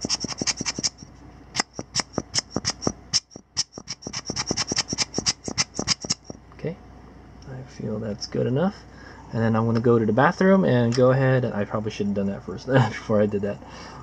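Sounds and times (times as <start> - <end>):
rubber bulb blower puffing: 0.0 - 6.4.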